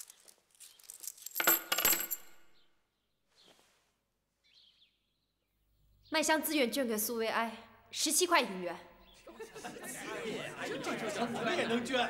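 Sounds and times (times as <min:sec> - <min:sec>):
coins dropped into wooden box: 0:00.0 - 0:02.6.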